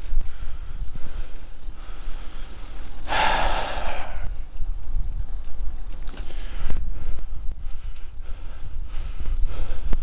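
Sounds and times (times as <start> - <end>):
wind rumbling on microphone: 0.0 - 10.0
loud breathy exhale: 3.0 - 4.4.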